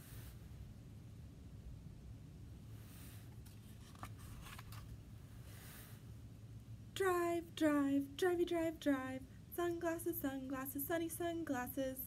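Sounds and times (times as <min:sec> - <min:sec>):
book page turning: 0:03.4 - 0:05.0.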